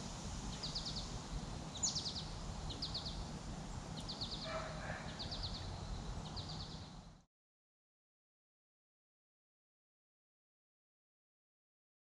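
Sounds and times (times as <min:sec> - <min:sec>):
low outdoor rumble: 0:00.0 - 0:07.2
songbird singing: 0:00.0 - 0:07.3.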